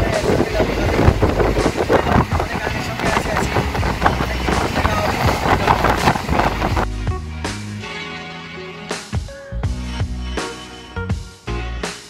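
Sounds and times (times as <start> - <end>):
wind: 0.0 - 7.1
background music with bass: 0.0 - 12.0.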